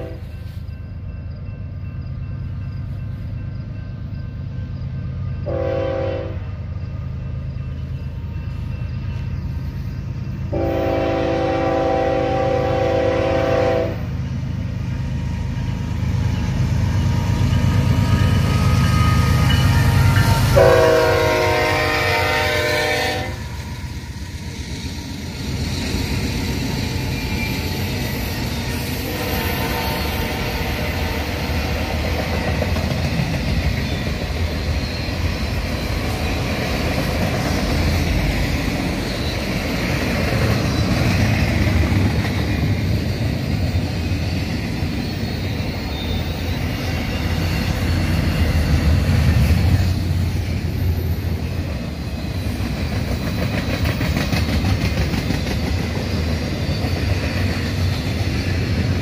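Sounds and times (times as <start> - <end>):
locomotive air horn blasts: 0.0 - 0.3, 5.4 - 6.4, 10.5 - 14.1, 20.3 - 23.5, 29.1 - 31.2
train wheels clattering on rail: 0.0 - 59.0.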